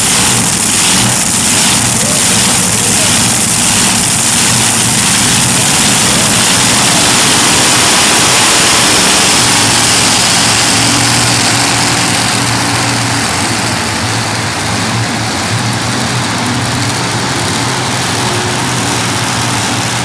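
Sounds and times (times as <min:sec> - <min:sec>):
tractor engines idling: 0:00.0 - 0:20.0.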